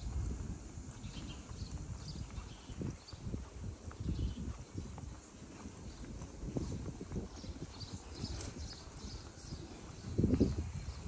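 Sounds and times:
footsteps on pavement: 0:00.0 - 0:11.0.

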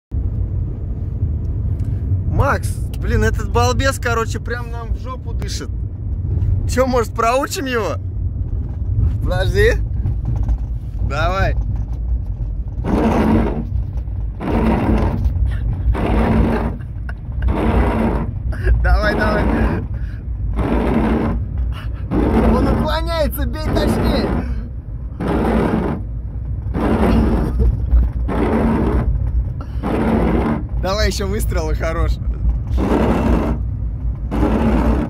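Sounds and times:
car engine and road noise: 0:00.0 - 0:35.0
washer pump whirring: 0:34.2 - 0:35.0.

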